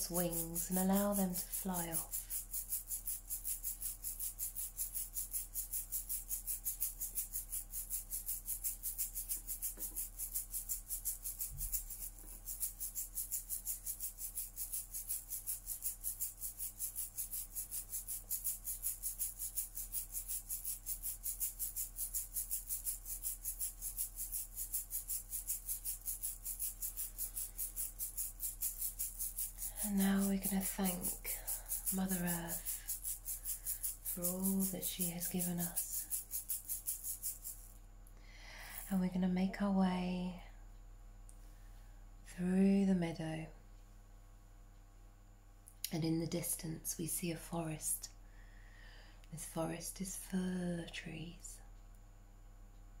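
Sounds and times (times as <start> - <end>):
shaker-like rattle: 0.0 - 37.9, 38.5 - 40.0, 45.6 - 48.2, 49.3 - 51.6.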